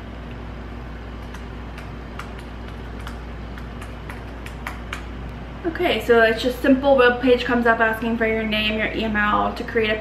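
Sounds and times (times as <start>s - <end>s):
steady low hum: 0.0s - 10.0s
laptop keyboard typing: 1.2s - 5.1s.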